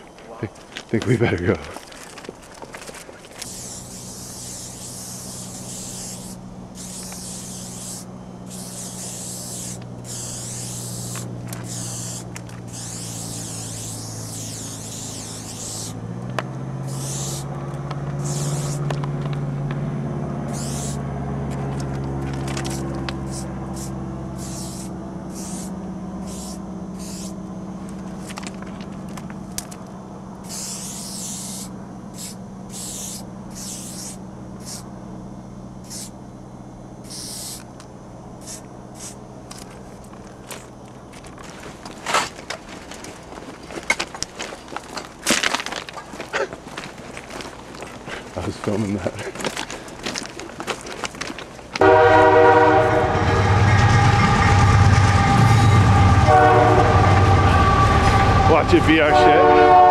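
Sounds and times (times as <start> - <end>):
steady low hum: 0.0 - 59.9
spray paint can hissing: 3.4 - 16.1, 16.8 - 17.5, 18.2 - 19.0, 20.5 - 21.0, 22.5 - 27.4, 30.4 - 34.9, 35.8 - 36.2, 37.0 - 37.8, 38.4 - 39.8.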